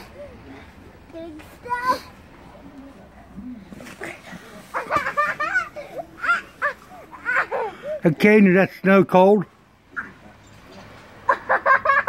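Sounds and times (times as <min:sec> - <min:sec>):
child's wordless calls: 0:01.2 - 0:02.2.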